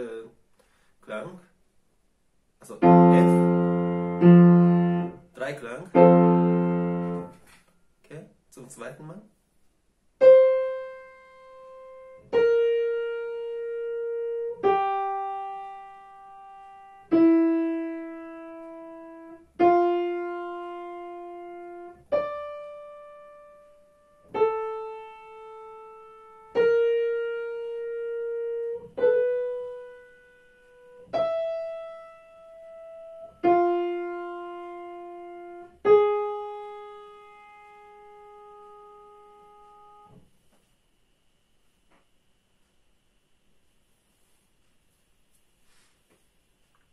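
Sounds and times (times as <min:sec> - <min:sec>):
slow digital piano melody: 0:02.6 - 0:07.4, 0:10.2 - 0:40.1.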